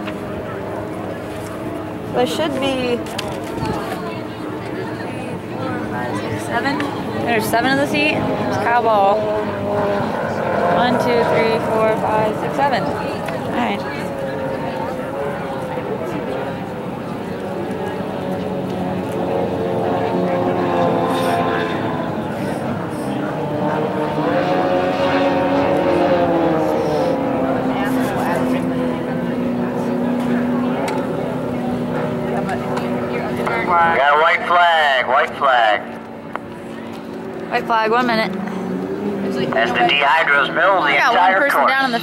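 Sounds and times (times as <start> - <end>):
racing boat engines: 0.0 - 42.0.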